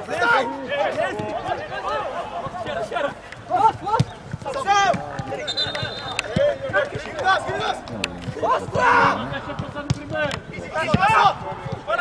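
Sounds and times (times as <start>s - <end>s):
players shouting: 0.0s - 12.0s.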